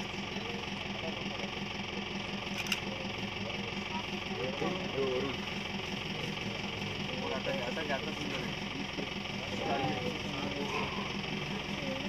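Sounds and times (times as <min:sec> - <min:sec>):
low voices talking: 0:00.0 - 0:12.0
vehicle engine idling: 0:00.0 - 0:12.0.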